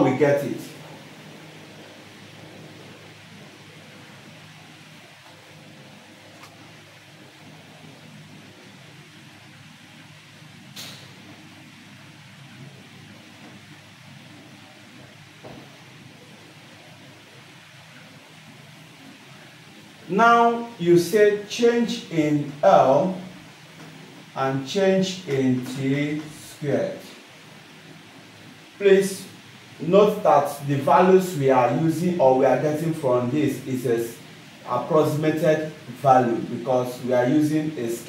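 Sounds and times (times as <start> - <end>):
faint low hum: 0.0 - 38.0.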